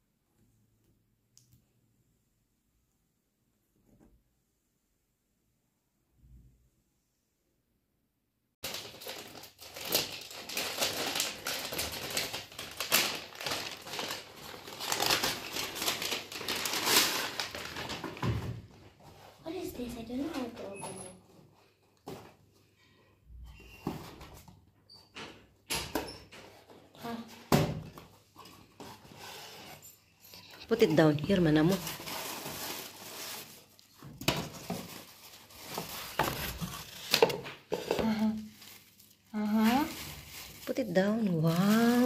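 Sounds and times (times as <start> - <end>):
paper rustling and crinkling: 8.6 - 22.4, 30.4 - 42.0.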